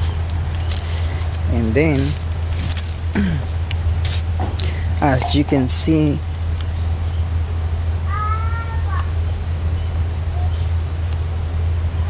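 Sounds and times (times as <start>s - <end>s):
steady low hum: 0.0s - 12.0s
high-pitched drawn-out cry: 8.1s - 9.1s.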